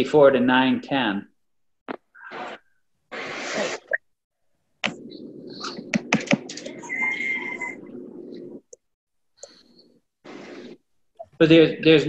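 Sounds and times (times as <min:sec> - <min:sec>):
sharp clicks and taps: 0:05.9 - 0:06.7
thin squeak: 0:06.7 - 0:07.9.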